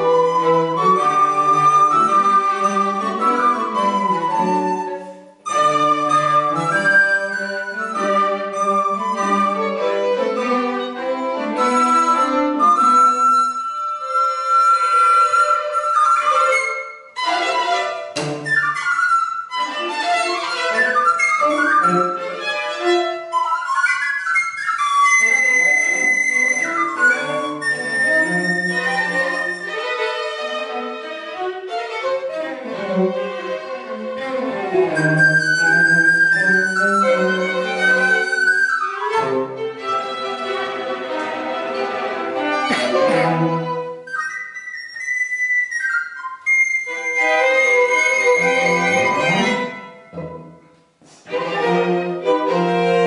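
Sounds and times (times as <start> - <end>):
bowed strings: 0.0 - 53.0
recorder notes: 42.4 - 50.9.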